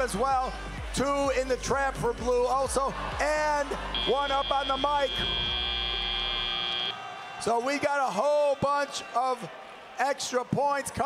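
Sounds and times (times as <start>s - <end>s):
high-pitched buzzer tone: 4.0s - 6.9s.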